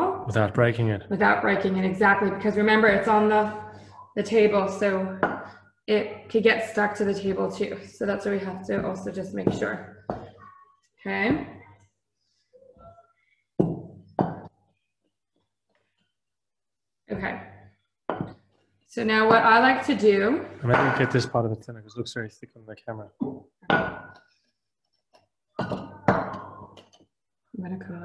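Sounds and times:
rolling pin thudding on stone: 18.1s - 18.5s.

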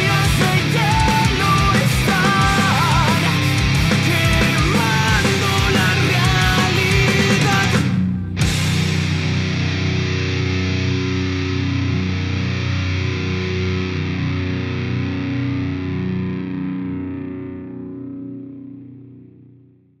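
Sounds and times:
distorted electric guitar chord ringing: 0.0s - 19.9s.

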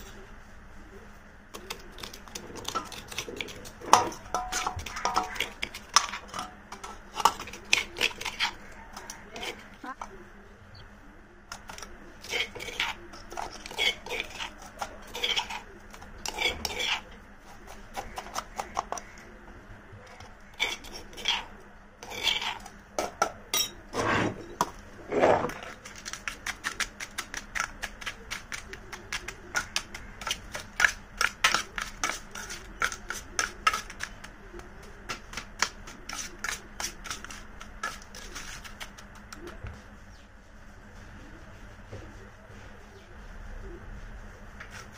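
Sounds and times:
spoon scraping in stone mortar: 1.6s - 10.0s, 11.5s - 19.3s, 20.1s - 39.6s.

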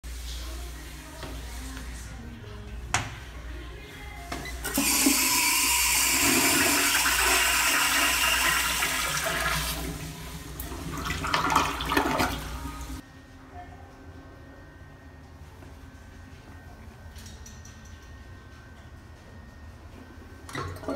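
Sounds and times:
water rushing into toilet bowl: 4.7s - 10.1s, 10.7s - 12.6s
toilet bowl gurgling: 4.7s - 13.0s, 20.5s - 20.9s.

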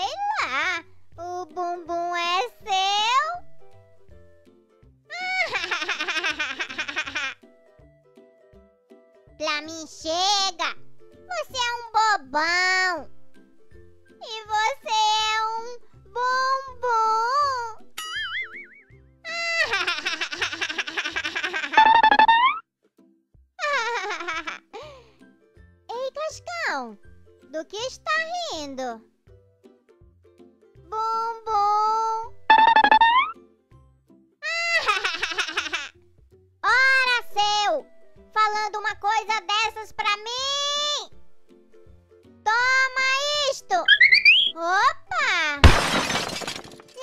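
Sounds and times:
light background music: 0.0s - 45.7s
cartoon child voice laughing: 5.1s - 7.4s, 19.3s - 22.6s, 23.6s - 24.9s, 34.4s - 35.9s, 43.9s - 44.6s
cartoon boing: 18.0s - 18.8s, 21.8s - 22.6s, 32.5s - 33.4s, 43.9s - 44.5s
high-pitched cartoon voice: 42.5s - 45.6s.

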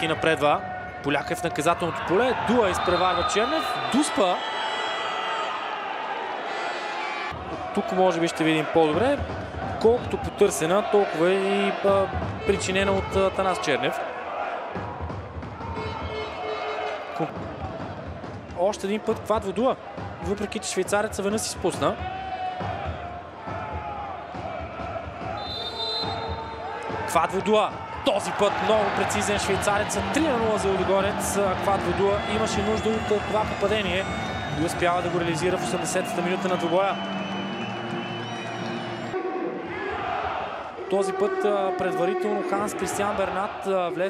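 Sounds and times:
stadium crowd noise: 0.0s - 44.0s
referee's whistle blast: 2.6s - 4.5s, 25.4s - 26.6s.

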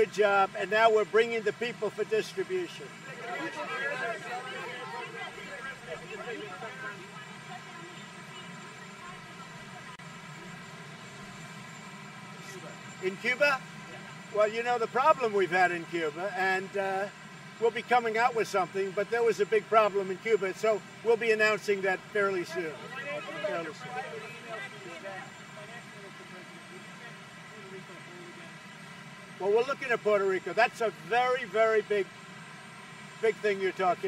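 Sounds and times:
low mechanical hum: 0.0s - 34.0s
steady motor drone: 0.0s - 34.0s.

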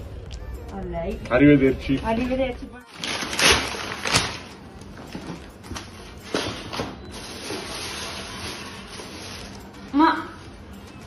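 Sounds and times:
paper rustling and crinkling: 2.9s - 4.5s, 5.7s - 9.8s.

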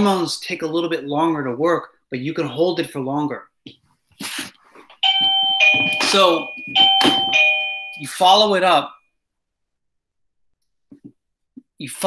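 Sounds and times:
two-tone doorbell chime: 5.0s - 8.4s.

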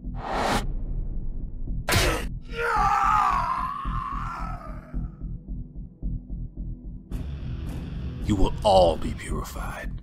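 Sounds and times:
background music with steady beat: 1.2s - 10.0s
man screaming: 2.5s - 5.0s.

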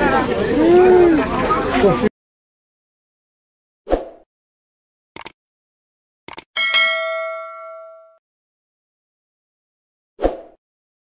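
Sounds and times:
mouse clicks: 5.2s - 5.4s, 6.3s - 6.5s
bright bell ding: 6.6s - 8.2s.

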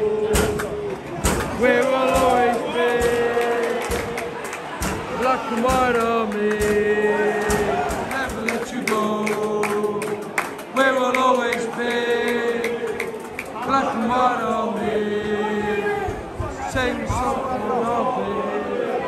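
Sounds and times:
crowd singing a chant: 0.0s - 19.0s
sharp knocks: 0.2s - 9.0s.

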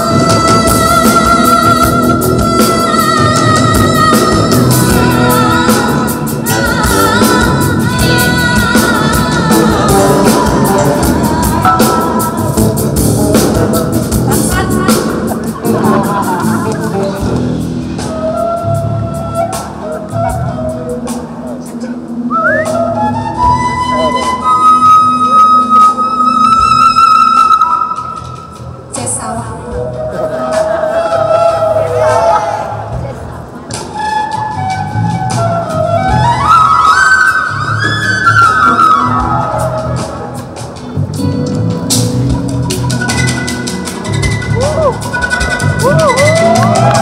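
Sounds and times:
jazz fusion band: 0.0s - 47.0s
flute solo: 18.0s - 28.9s, 29.8s - 33.0s, 33.7s - 40.6s, 42.6s - 47.0s.

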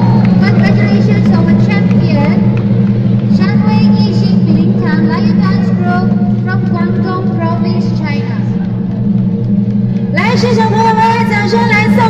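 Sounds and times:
crowd voices and shouts: 0.0s - 12.0s.

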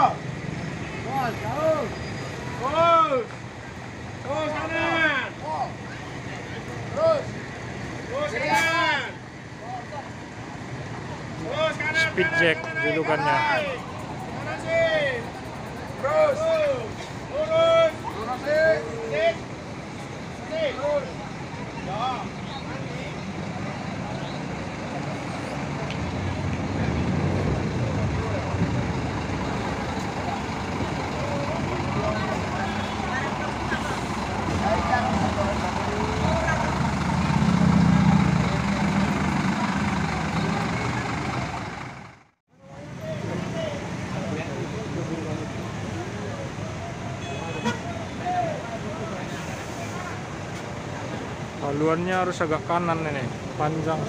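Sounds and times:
bus diesel engine rumbling: 0.0s - 54.0s.

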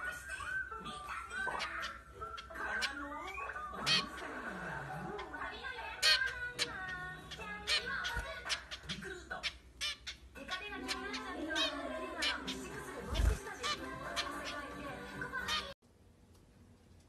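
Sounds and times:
music: 0.0s - 3.8s, 11.8s - 15.8s
finch chirping: 0.0s - 4.3s, 5.1s - 15.8s
voices: 0.0s - 15.8s.

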